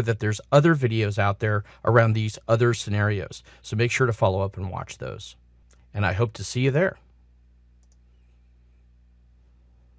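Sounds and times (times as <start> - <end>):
low steady room hum: 0.0 - 9.9
faint click: 7.8 - 8.1.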